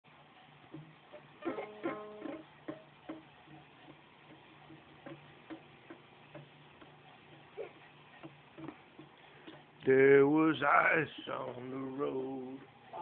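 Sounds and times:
low steady hum: 0.1s - 13.0s
faint irregular ticks: 0.4s - 13.0s.

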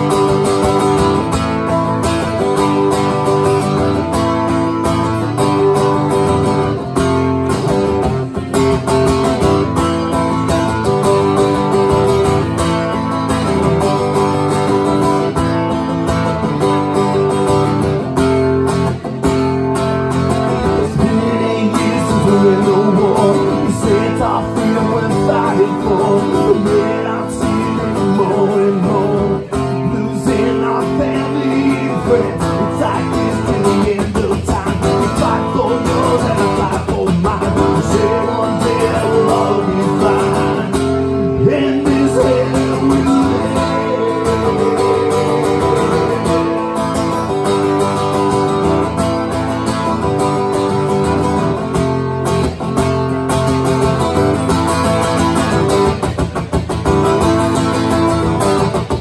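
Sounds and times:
acoustic guitar strumming: 0.0s - 59.0s.

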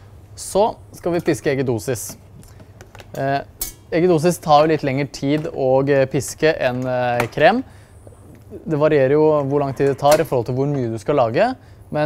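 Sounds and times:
kitchen equipment clicks and clinks: 3.1s - 3.9s.

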